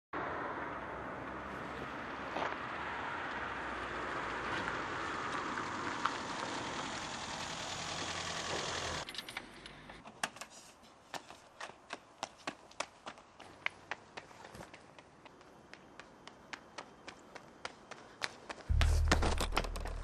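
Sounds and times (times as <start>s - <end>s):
car engine and road noise: 0.2s - 10.0s, 18.7s - 20.0s.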